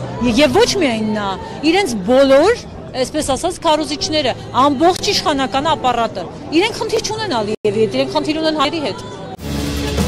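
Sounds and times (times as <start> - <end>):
woman speaking into a microphone: 0.2 - 9.3.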